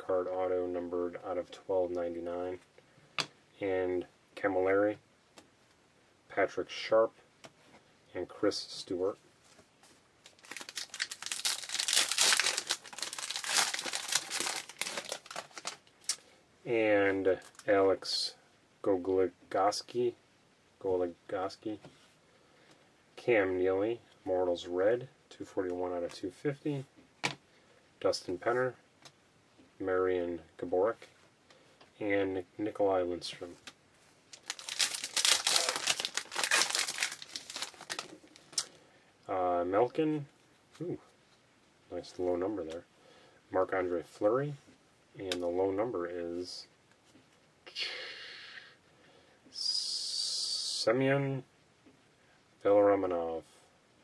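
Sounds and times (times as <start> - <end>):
foil wrapper crinkling and tearing: 10.2 - 16.2, 34.3 - 38.7.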